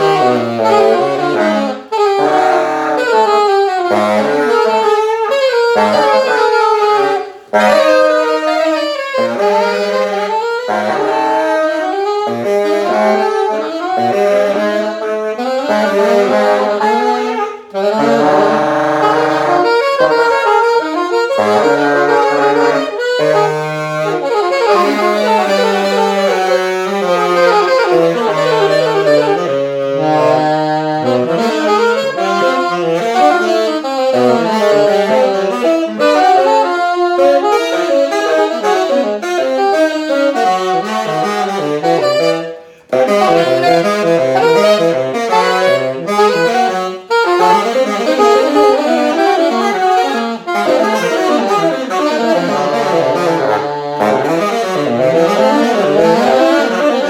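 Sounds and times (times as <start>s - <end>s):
saxophone duet: 0.0s - 57.0s.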